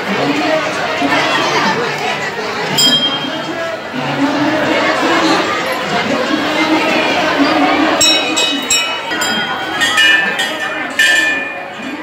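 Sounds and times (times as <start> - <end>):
crowd voices: 0.0 - 12.0
temple bell ringing: 2.8 - 3.7, 7.0 - 12.0.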